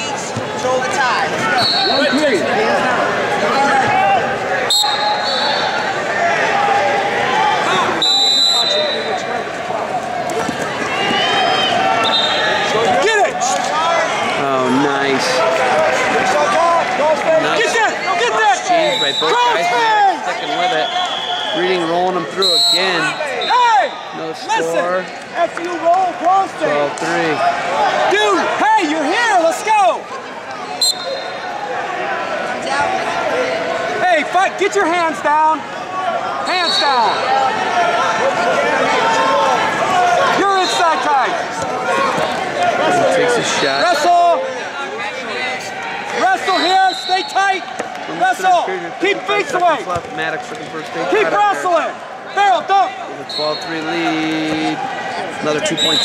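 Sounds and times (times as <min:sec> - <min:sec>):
coaches and spectators shouting: 0:00.0 - 0:56.0
crowd murmur: 0:00.0 - 0:56.0
referee's whistle blasts: 0:01.6 - 0:02.3, 0:04.7 - 0:05.8, 0:08.0 - 0:09.2, 0:11.1 - 0:12.7, 0:18.8 - 0:19.6, 0:20.3 - 0:24.1, 0:30.7 - 0:31.4, 0:36.5 - 0:37.3, 0:46.4 - 0:47.5, 0:53.2 - 0:53.9, 0:55.7 - 0:56.0.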